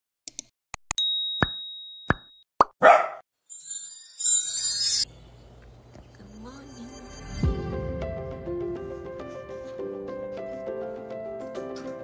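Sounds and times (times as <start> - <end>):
bell-like ding: 3.5 - 5.1
bright shimmering whoosh: 3.5 - 5.1, 6.2 - 8.3.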